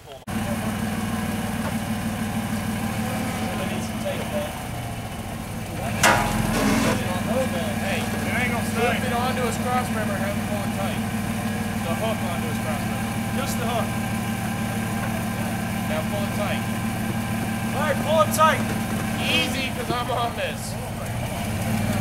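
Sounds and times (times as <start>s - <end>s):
distant voices calling: 0.0s - 22.0s
engine idling: 0.0s - 22.0s
sharp metallic clank: 5.9s - 7.2s.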